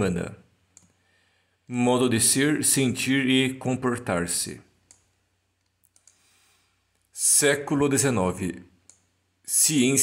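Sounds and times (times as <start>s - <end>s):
faint computer mouse clicks: 0.7s - 1.0s, 4.8s - 6.2s, 8.8s - 9.1s.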